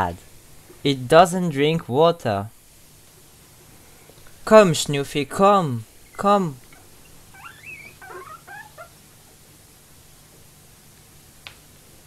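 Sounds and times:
guinea pig squeaking: 6.7s - 9.0s.

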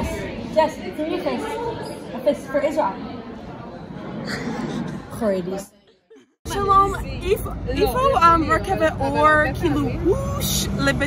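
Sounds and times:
road traffic noise: 6.5s - 11.0s
woman talking: 6.5s - 11.0s.

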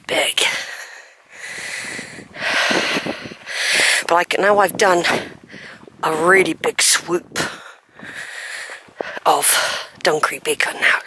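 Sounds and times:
person breathing: 0.5s - 4.1s, 7.4s - 10.0s.

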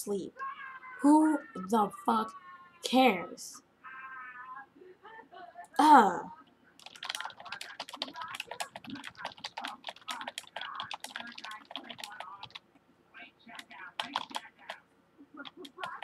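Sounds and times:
typing on computer keyboard: 6.8s - 12.7s, 13.5s - 14.8s, 15.4s - 16.0s.

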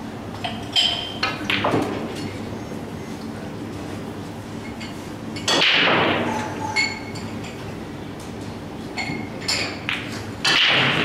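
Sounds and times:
pool balls hard hits: 9.9s - 11.0s.

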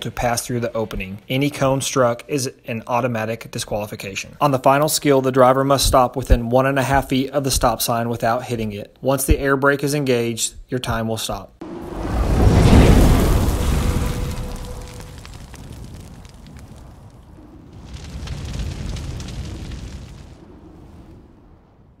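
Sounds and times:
hissing whoosh: 11.6s - 16.6s
deep booming rumble: 11.6s - 22.0s.

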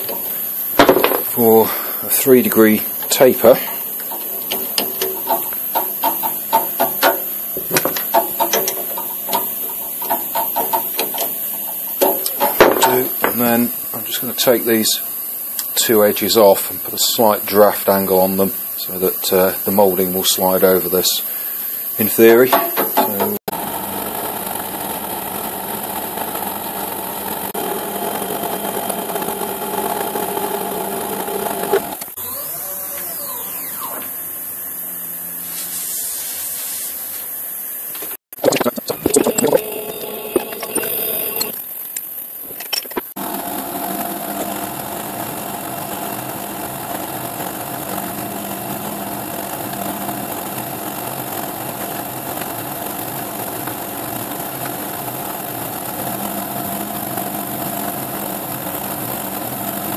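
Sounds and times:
milling machine running: 0.0s - 14.1s
loud irregular machine noises: 0.0s - 35.6s, 37.8s - 59.9s.

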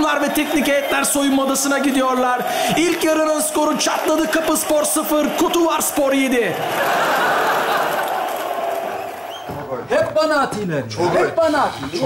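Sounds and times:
studio audience laughing: 5.2s - 9.4s.

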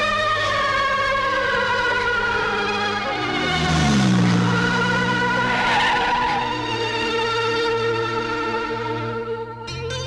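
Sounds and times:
synthesizer film score: 0.0s - 9.8s
tyres skidding: 1.4s - 7.8s
vehicle rushing past: 2.4s - 7.4s.

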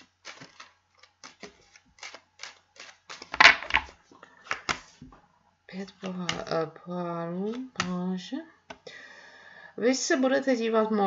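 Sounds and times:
cards being shuffled: 0.0s - 5.1s.

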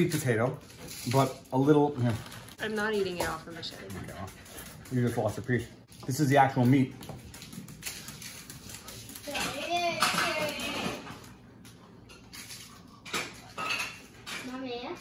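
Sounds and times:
cutlery and dishes clinking: 9.2s - 11.2s, 12.1s - 14.6s.

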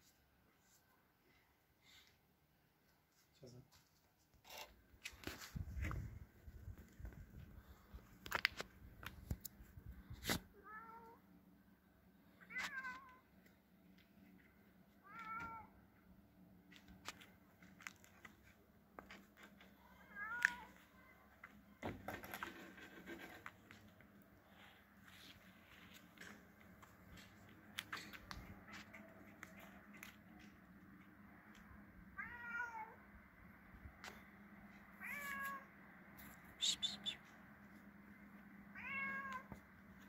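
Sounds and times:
cat meowing: 32.2s - 33.0s, 35.0s - 35.7s, 38.7s - 39.5s.

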